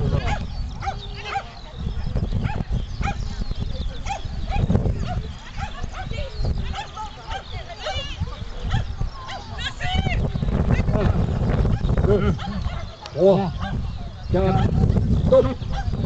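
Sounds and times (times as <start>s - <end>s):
dog barking: 0.2s - 1.5s, 2.4s - 3.2s, 4.0s - 8.0s, 8.6s - 9.5s, 12.4s - 13.8s, 14.5s - 14.8s, 15.7s - 16.0s.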